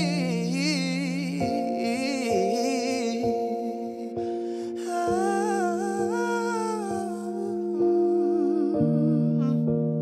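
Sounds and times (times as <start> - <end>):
person humming melody: 0.0 - 10.0
sustained keyboard chords: 0.0 - 10.0.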